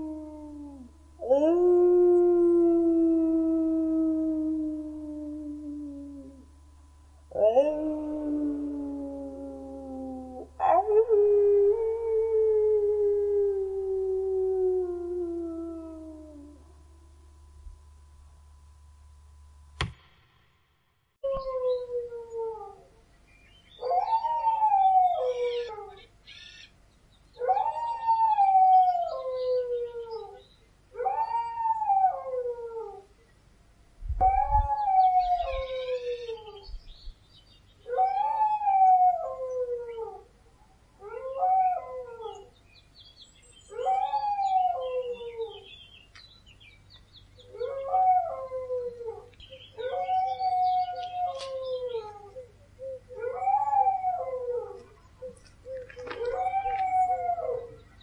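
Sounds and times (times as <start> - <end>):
dogs howling: 7.3 - 16.6, 23.8 - 26.1, 27.4 - 30.4, 47.4 - 57.9.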